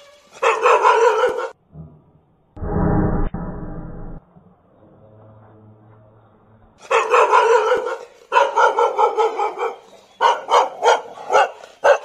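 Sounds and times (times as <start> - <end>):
dog barking: 0.4 - 1.6, 6.8 - 12.0.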